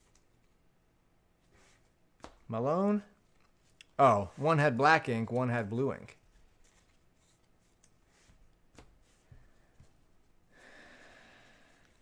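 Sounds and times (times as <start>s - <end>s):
handling trading cards: 6.2s - 10.4s.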